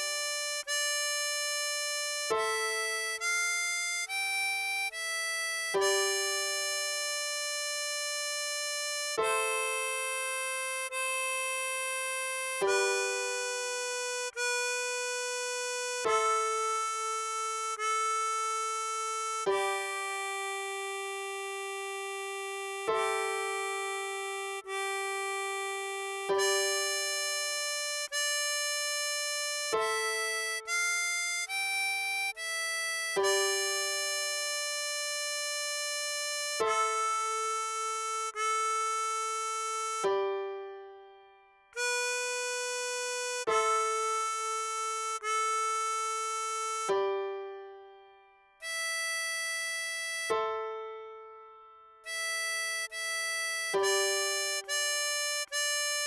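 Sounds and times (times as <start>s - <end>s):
harmonica holding steady note: 0.0s - 51.1s, 52.0s - 56.0s.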